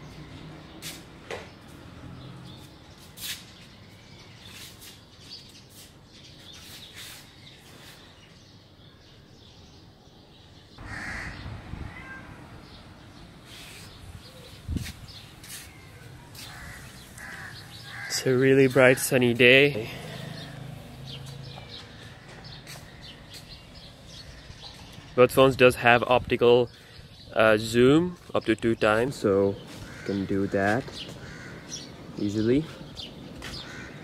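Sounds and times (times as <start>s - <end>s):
crows cawing: 10.8s - 12.8s, 15.5s - 24.9s, 29.6s - 34.0s.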